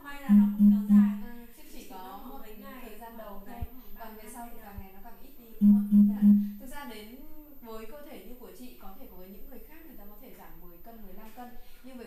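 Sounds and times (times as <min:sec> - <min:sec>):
woman speaking: 0:00.0 - 0:12.0
loud low tone pulses: 0:00.3 - 0:01.2, 0:05.6 - 0:06.6.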